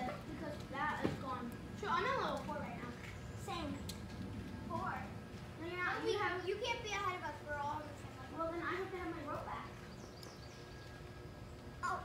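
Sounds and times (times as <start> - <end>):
girls talking: 0.0 - 9.9, 11.8 - 12.0
low background rumble: 0.0 - 12.0.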